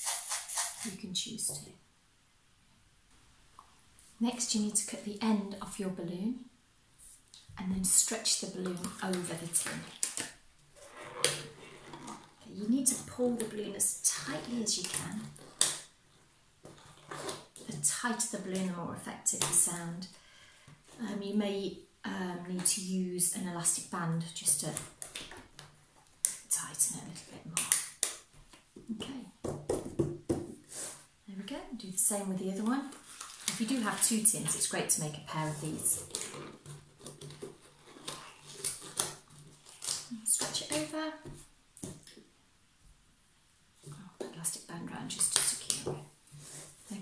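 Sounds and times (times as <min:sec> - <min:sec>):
rubber balloon rubbing and stretching: 0:10.8 - 0:13.5, 0:35.3 - 0:40.1
clicks and scrapes of rubber: 0:14.3 - 0:17.9, 0:35.4 - 0:42.2.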